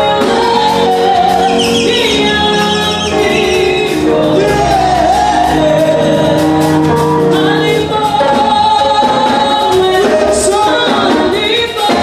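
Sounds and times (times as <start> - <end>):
voices singing along: 0.0 - 12.0
woman singing gospel song: 0.0 - 12.0.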